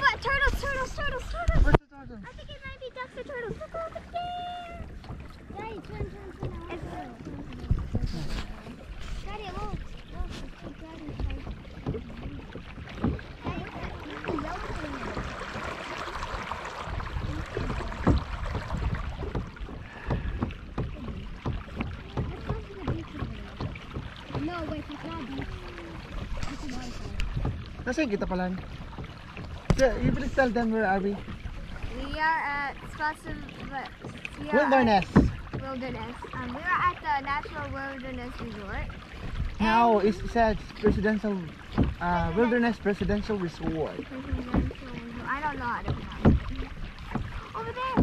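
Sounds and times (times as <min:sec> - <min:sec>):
water sloshing against kayak hull: 0:00.0 - 0:48.0
wind rumbling on microphone: 0:00.0 - 0:48.0
knocks on hull: 0:04.8 - 0:48.0.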